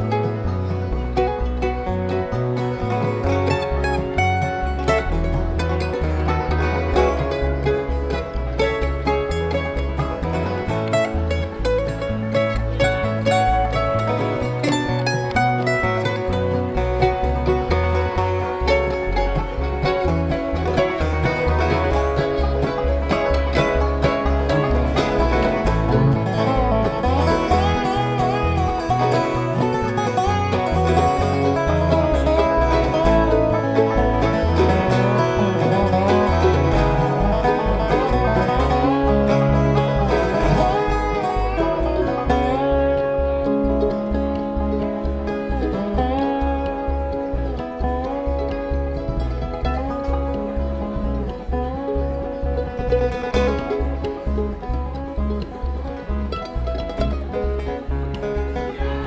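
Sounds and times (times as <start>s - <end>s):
acoustic guitar: 0.0s - 59.0s
banjo: 0.0s - 59.0s
mandolin: 0.0s - 59.0s
slide resonator guitar: 0.0s - 59.0s
upright bass low notes: 0.0s - 59.0s.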